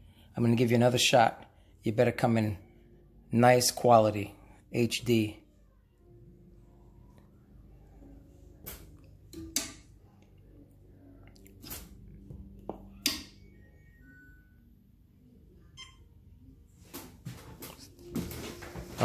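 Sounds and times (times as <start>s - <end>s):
faint low hum: 2.5s - 3.4s, 4.3s - 19.0s.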